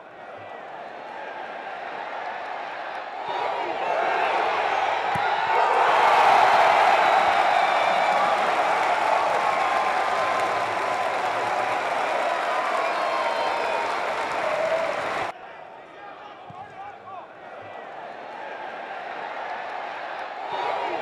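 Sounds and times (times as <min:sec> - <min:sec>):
stadium crowd cheering and shouting: 0:00.0 - 0:21.0.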